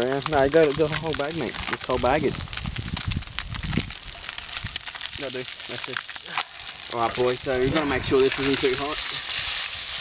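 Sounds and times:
oil crackling in pan: 0.0s - 10.0s.

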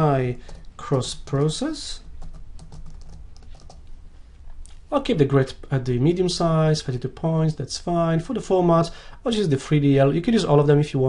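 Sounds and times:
computer keyboard typing: 1.3s - 3.8s.

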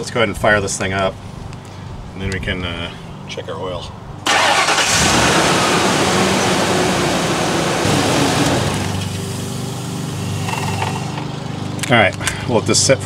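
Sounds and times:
van engine idling: 4.3s - 12.6s.

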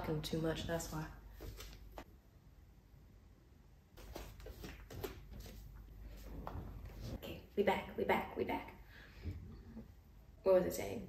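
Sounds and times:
light knocks and shuffles: 0.5s - 2.1s, 4.0s - 7.4s.

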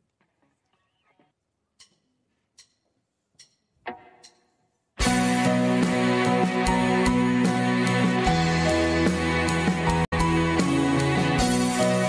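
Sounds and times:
sharp count-in clicks: 1.8s - 4.6s.

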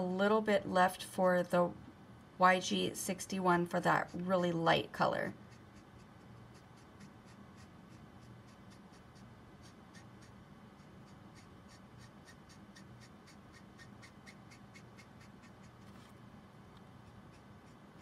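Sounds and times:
marker nib scratching on card: 2.6s - 16.2s, 16.8s - 18.0s.

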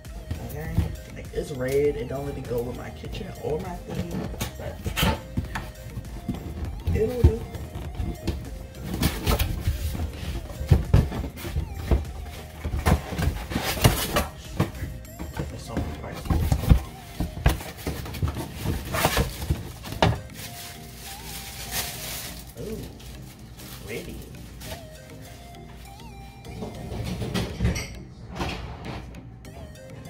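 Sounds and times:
background music: 0.0s - 30.0s
knocks of handling boxed pans: 3.4s - 20.7s, 26.5s - 29.2s.

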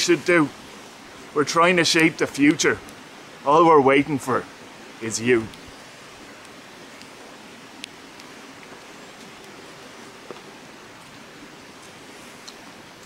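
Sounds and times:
low outdoor hiss: 0.0s - 13.0s
faint clicks: 6.4s - 7.2s, 7.8s - 9.6s, 11.8s - 13.0s.

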